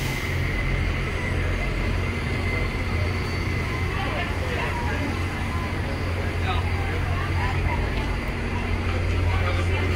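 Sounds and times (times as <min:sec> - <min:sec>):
bus engine rumbling: 0:00.0 - 0:09.9
city traffic: 0:00.0 - 0:09.9.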